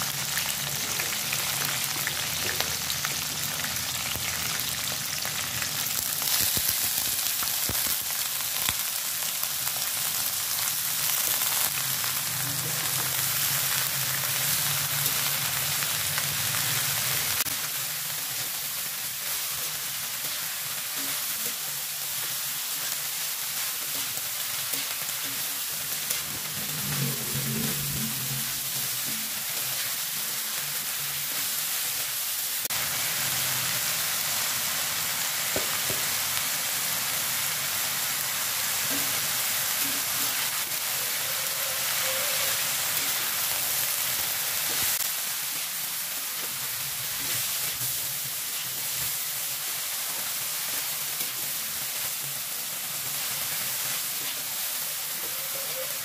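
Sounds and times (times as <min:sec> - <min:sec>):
oil sizzling in a wok: 0:00.0 - 0:56.0.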